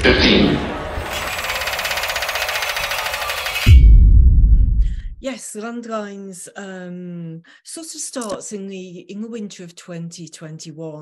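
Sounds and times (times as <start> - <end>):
pulsing mechanical rattle: 1.0 - 3.8.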